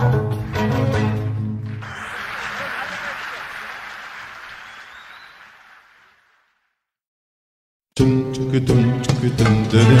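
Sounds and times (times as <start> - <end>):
audience applause: 1.6 - 6.8.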